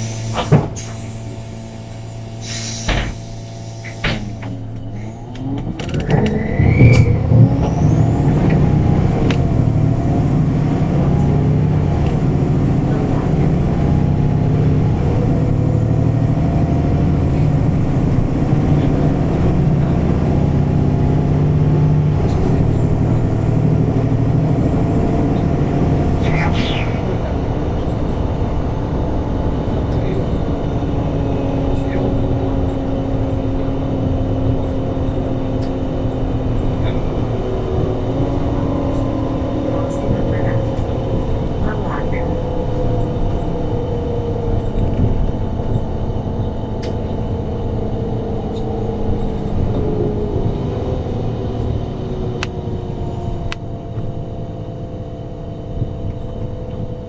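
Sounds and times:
bus engine accelerating: 0.0 - 57.0.

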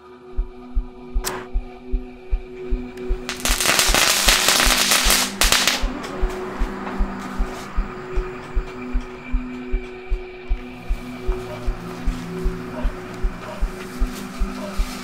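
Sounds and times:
music with low pulsing beat: 0.0 - 15.0
firecrackers popping: 3.3 - 5.9.

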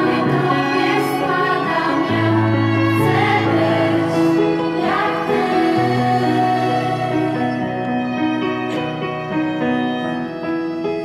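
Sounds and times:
girls choir singing: 0.0 - 8.1
violin: 0.0 - 11.0.

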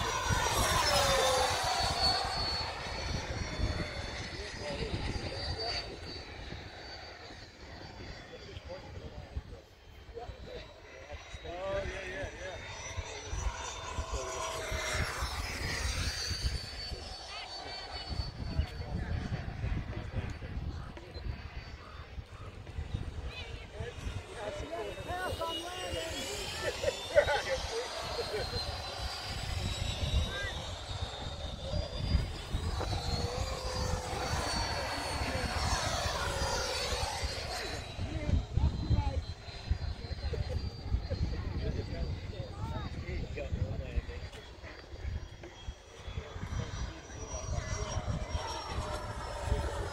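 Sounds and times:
wind rumble on microphone: 0.0 - 10.7, 17.7 - 49.9
model jet fan whine: 0.0 - 49.9.

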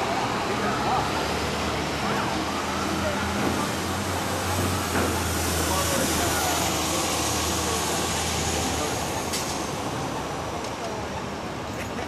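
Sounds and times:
distant ambulance siren wailing: 0.0 - 7.6
city street traffic: 0.0 - 12.0.

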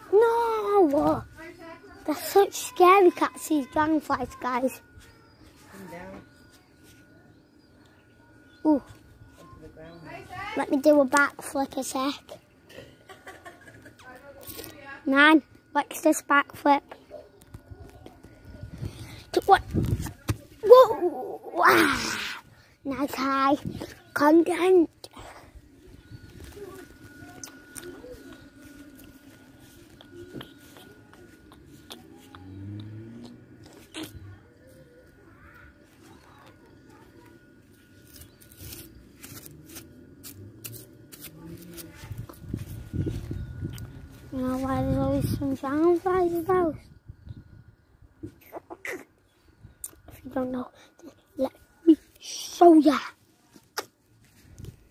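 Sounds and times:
faint low hum: 0.0 - 54.9.

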